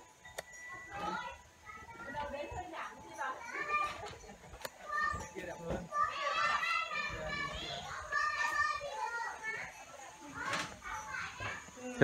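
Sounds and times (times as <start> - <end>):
children chattering and calling: 0.0 - 12.0.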